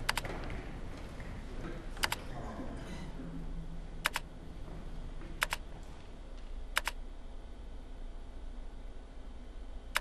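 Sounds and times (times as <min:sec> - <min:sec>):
keyboard keystroke clicks: 0:00.1 - 0:00.3, 0:02.0 - 0:02.2, 0:04.0 - 0:04.2, 0:05.4 - 0:05.6, 0:06.8 - 0:07.0.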